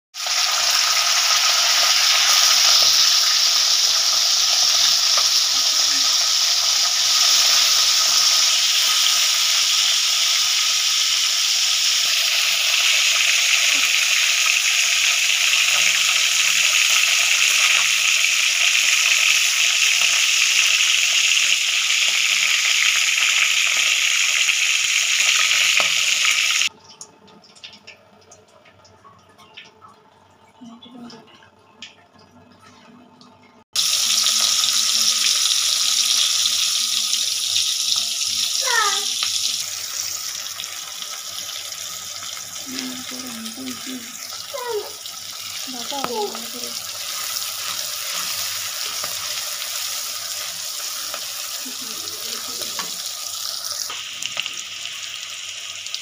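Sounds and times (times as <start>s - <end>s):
chicken sizzling in hot oil: 0.1s - 26.7s, 33.8s - 56.0s.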